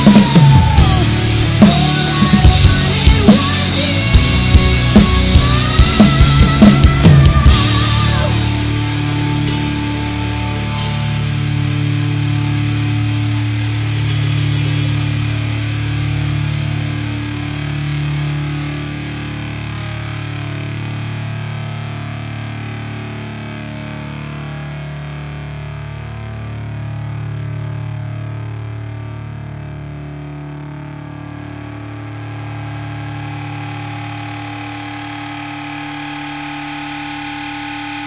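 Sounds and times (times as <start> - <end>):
distorted electric guitar chords: 0.0 - 38.0.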